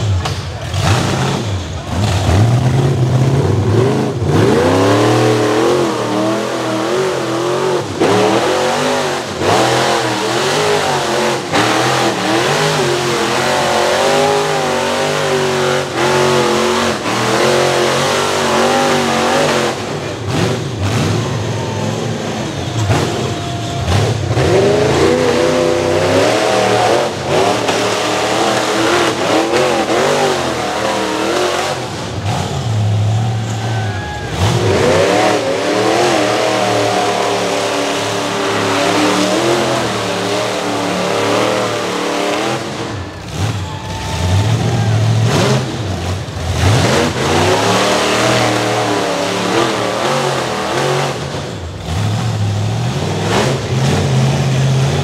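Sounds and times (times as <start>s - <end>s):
engine revving hard: 0.0s - 33.6s, 34.2s - 55.0s.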